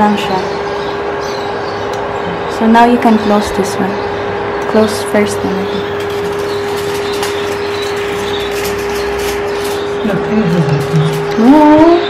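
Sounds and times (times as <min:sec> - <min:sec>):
cooktop cooling fan hum: 0:00.0 - 0:12.0
aluminium foil crinkling: 0:05.4 - 0:12.0.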